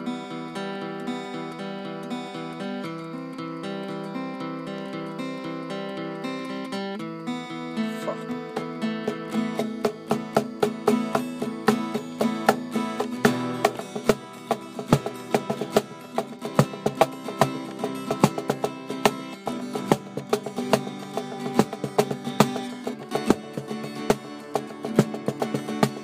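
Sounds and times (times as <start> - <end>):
guitar plucked and strummed: 0.0 - 26.0.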